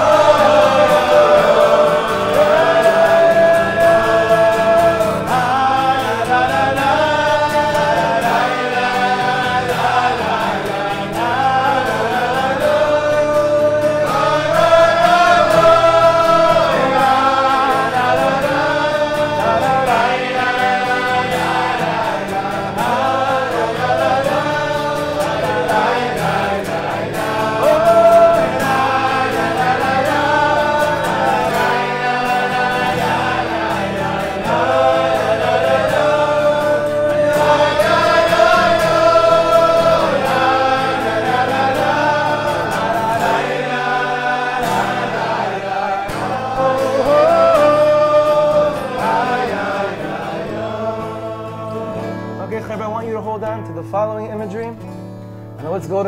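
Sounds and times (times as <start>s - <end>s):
group of men singing: 0.0s - 53.2s
acoustic guitar: 0.0s - 56.0s.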